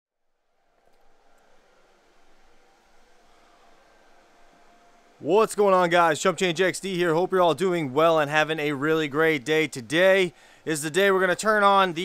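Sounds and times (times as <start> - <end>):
faint steady hum: 0.2 - 12.0.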